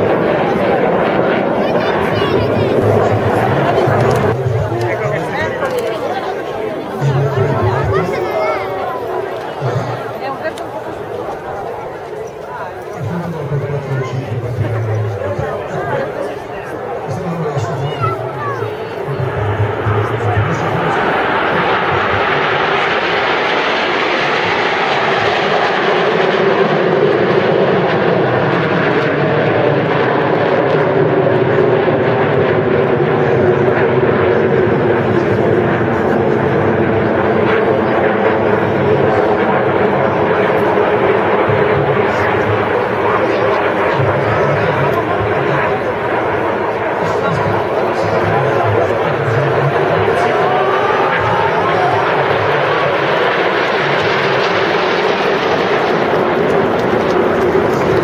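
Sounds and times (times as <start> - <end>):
jet aircraft flying overhead: 0.0 - 58.0.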